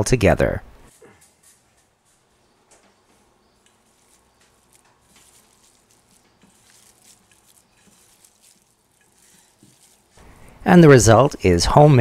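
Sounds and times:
hands squishing ground meat: 3.0s - 10.6s.

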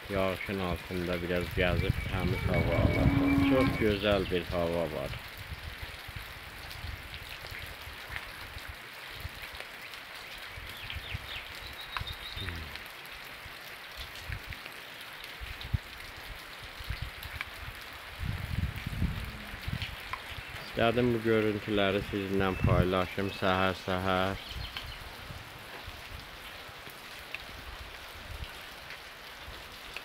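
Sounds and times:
steady rain falling: 0.0s - 30.0s.

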